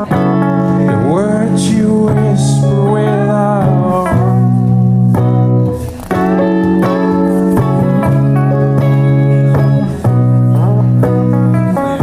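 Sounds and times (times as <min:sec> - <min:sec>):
live band with guitar chords: 0:00.0 - 0:12.0.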